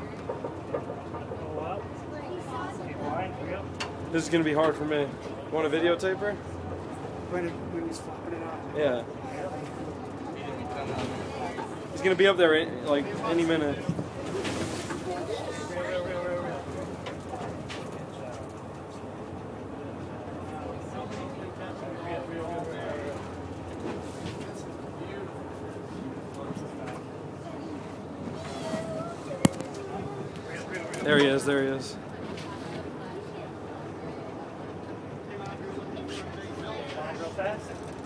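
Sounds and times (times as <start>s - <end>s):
faint indistinct voices: 0.0s - 38.0s.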